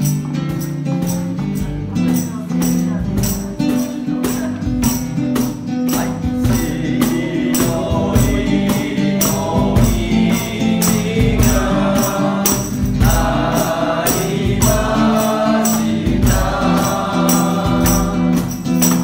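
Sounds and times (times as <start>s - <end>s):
classical guitar: 0.0s - 19.0s
tambourine beat: 0.0s - 19.0s
choir singing a hymn: 6.0s - 19.0s.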